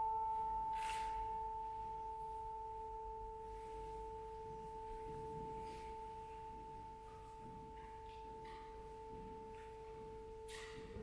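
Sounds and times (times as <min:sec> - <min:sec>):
two steady pure tones: 0:00.0 - 0:11.0.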